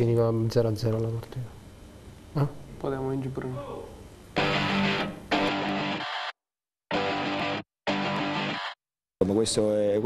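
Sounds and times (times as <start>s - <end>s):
guitar-led ident music: 4.4s - 6.3s, 6.9s - 8.8s.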